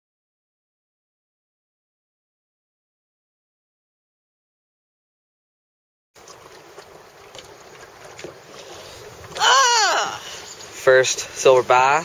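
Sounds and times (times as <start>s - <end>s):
choppy water beside boat: 6.2s - 12.0s
wind: 6.2s - 12.0s.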